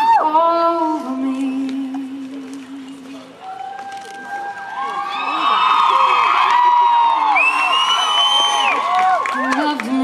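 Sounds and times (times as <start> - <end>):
crowd cheering and whooping: 3.4 - 9.8.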